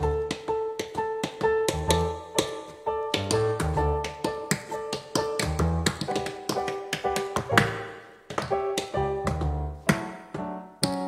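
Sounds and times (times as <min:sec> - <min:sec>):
tap dancing taps: 0:00.0 - 0:11.0
bass line: 0:03.2 - 0:04.0, 0:05.4 - 0:06.0, 0:09.0 - 0:09.8.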